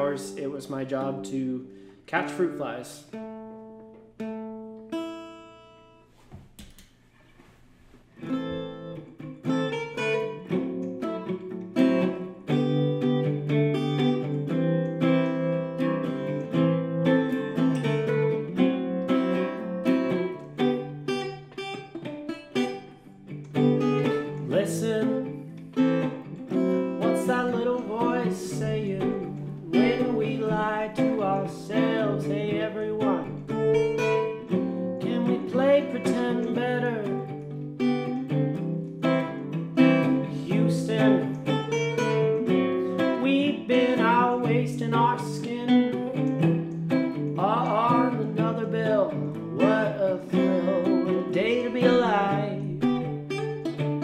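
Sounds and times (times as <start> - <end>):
acoustic guitar chords ringing: 0.0 - 6.2, 8.1 - 54.0
acoustic guitar strumming: 0.0 - 6.3, 8.0 - 54.0.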